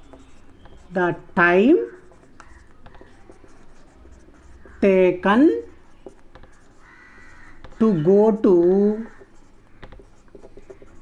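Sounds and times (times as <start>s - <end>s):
marker squeaks: 0.0s - 11.0s
marker writing on whiteboard: 0.0s - 11.0s.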